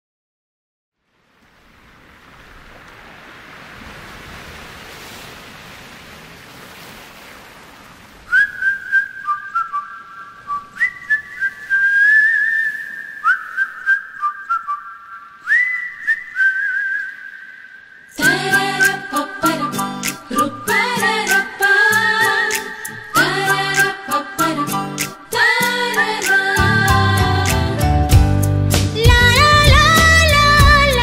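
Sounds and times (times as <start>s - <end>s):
ocean surf washing on beach: 1.0s - 16.2s, 16.8s - 27.6s
man whistling slow melody: 8.3s - 20.2s.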